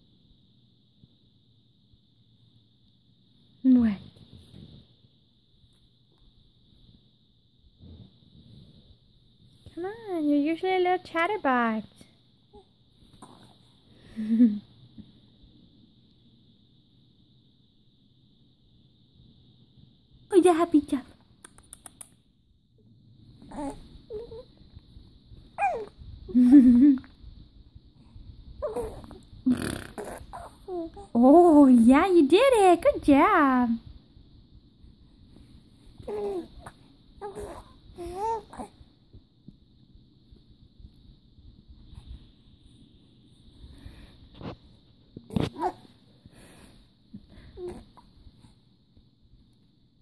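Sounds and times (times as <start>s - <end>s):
baby vocalizing: 23.5s - 24.4s, 28.6s - 31.1s, 36.0s - 38.7s
baby cooing: 23.5s - 24.5s, 25.6s - 25.9s, 28.6s - 31.1s, 36.0s - 38.7s, 45.5s - 45.8s.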